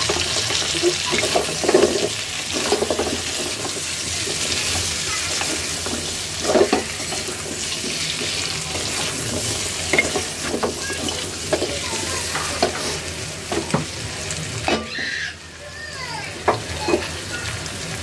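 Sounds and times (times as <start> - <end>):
food sizzling in oil: 0.0 - 18.0.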